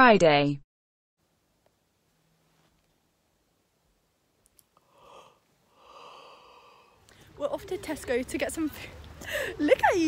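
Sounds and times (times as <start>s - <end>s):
faint breathy exhalations: 4.8s - 7.4s, 8.9s - 9.6s.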